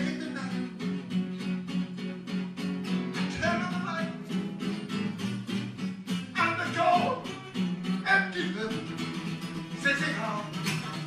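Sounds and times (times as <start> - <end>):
man singing: 0.0 - 0.9, 3.1 - 4.4, 6.2 - 11.0
acoustic guitar strumming: 0.0 - 11.0.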